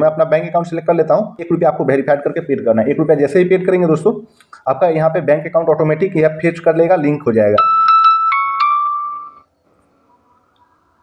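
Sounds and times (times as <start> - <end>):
phone chime: 7.6 - 9.5.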